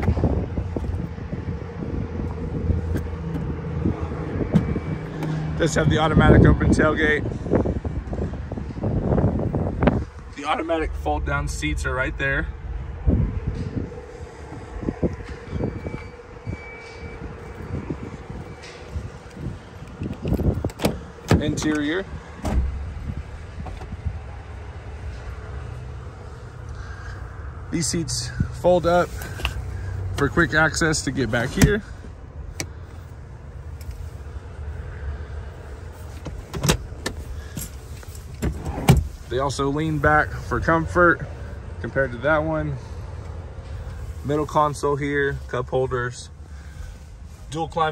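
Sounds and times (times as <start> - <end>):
steady low rumble: 0.0 - 47.9
low thumps: 1.8 - 5.5
seat latch clicks and knocks: 2.9 - 3.5, 4.4 - 5.4, 19.3 - 21.8, 22.4 - 22.8, 23.6 - 24.0, 36.2 - 37.2.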